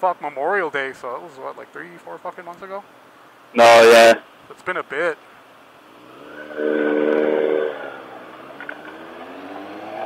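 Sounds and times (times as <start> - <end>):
motorcycle engine revving: 5.9 - 10.0.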